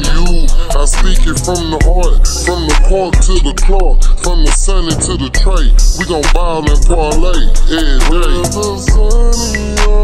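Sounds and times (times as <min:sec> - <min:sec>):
rapping over heavy bass beat: 0:00.0 - 0:10.0.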